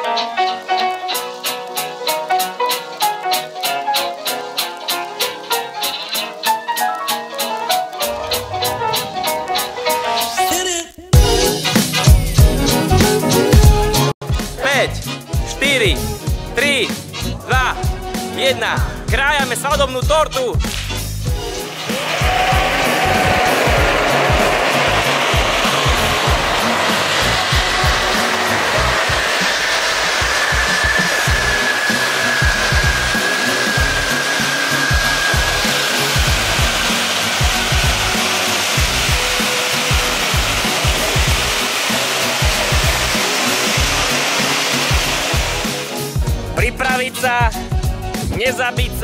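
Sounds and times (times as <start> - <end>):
music playing: 0.0 - 49.0
spark fountains hissing: 20.7 - 46.4.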